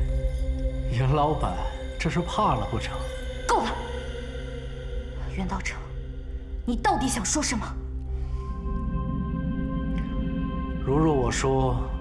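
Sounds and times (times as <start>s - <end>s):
man's voice: 0.9s - 3.2s, 10.8s - 12.0s.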